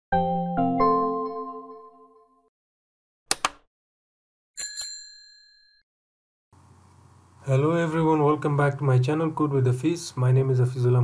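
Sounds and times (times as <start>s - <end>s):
click sound effects: 3.3s - 3.7s
bell ding: 4.6s - 5.8s.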